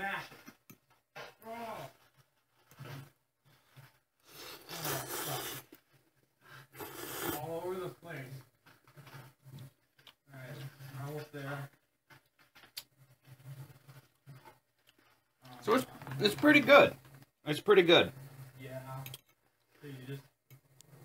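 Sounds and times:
noodles being slurped: 3.6s - 7.5s.

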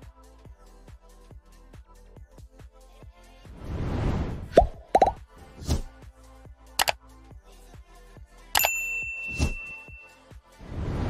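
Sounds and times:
background music: 0.0s - 3.6s, 4.6s - 11.0s
whoosh: 3.6s - 5.8s, 10.6s - 11.0s
cartoon pops: 4.5s - 5.2s.

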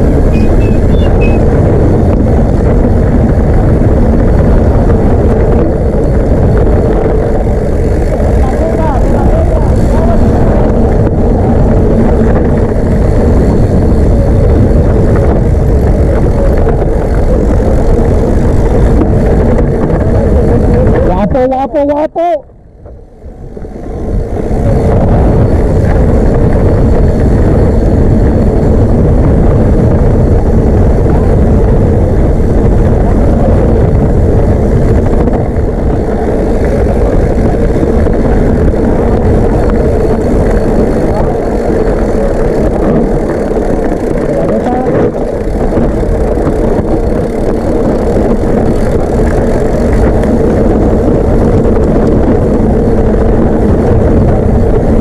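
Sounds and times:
bike frame rattling: 0.0s - 21.1s, 24.1s - 55.0s
tyres on gravel trail: 0.0s - 21.4s, 22.4s - 55.0s
wind on microphone: 0.0s - 55.0s.

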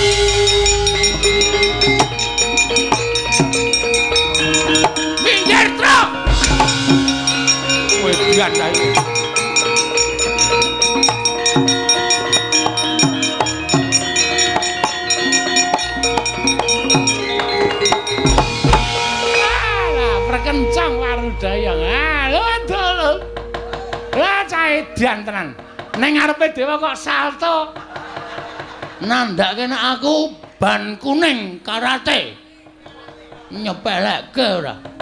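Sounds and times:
hand drum strokes: 0.0s - 26.1s
ringing metallophone tones: 0.0s - 26.4s
deep low boom: 6.1s - 9.0s, 18.4s - 24.7s.

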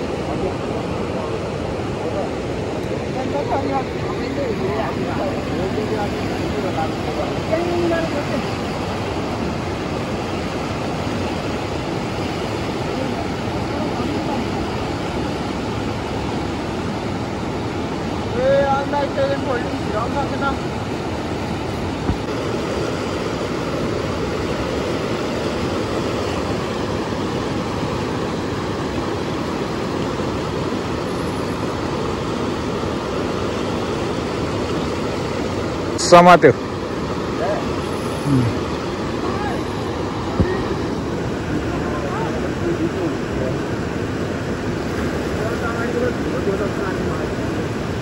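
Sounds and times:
fast-flowing river water: 0.0s - 48.0s.

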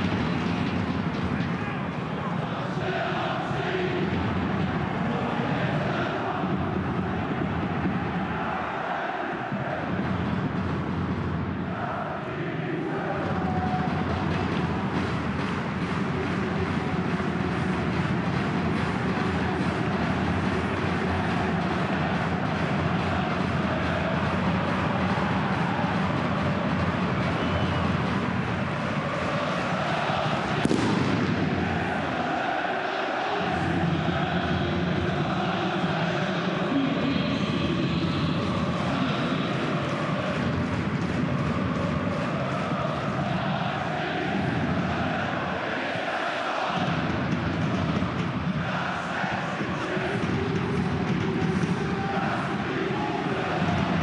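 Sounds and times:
stadium crowd noise: 0.0s - 54.0s
supporters singing and chanting: 0.0s - 54.0s.

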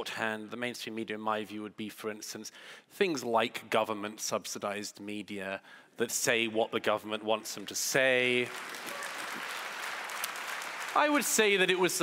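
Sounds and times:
audience applause: 7.6s - 12.0s.

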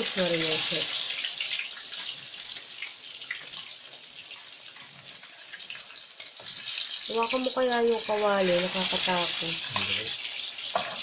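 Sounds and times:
oil sizzling in a wok: 0.0s - 11.0s.

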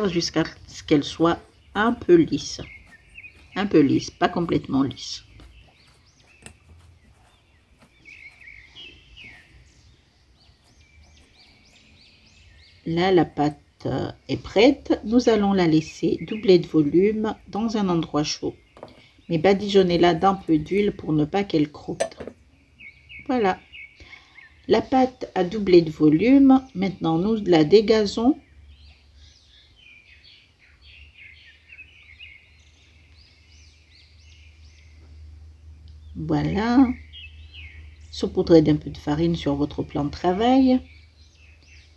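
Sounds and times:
faint bird chirps: 0.0s - 14.4s
small birds chirping: 0.0s - 41.9s.

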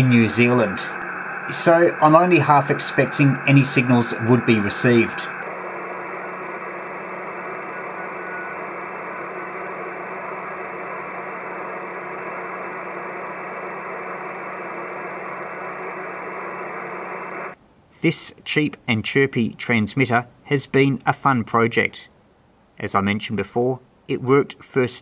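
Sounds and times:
radio static hiss: 0.0s - 17.6s
low steady hum: 0.0s - 17.9s.

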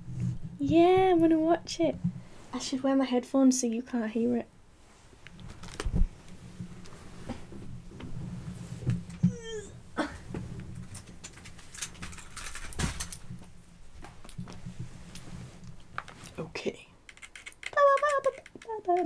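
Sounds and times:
handling noise rustling and bumps: 5.4s - 16.4s.

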